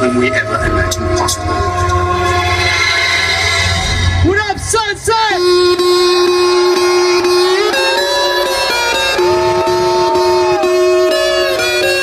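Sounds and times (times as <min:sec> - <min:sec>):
heavy steady bass: 0:00.0 - 0:12.0
sustained synth chord: 0:00.0 - 0:12.0.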